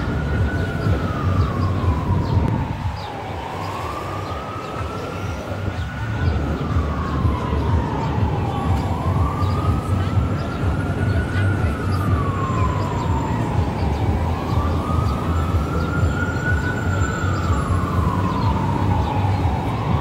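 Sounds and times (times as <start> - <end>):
emergency siren wailing: 0.0 - 20.0.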